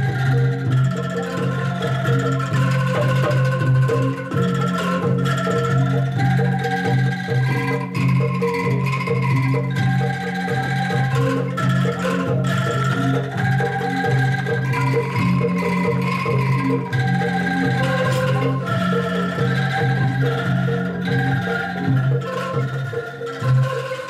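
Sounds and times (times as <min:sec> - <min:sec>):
bamboo angklung melody: 0:00.0 - 0:24.0
drum: 0:00.0 - 0:24.0
gong: 0:00.0 - 0:24.0.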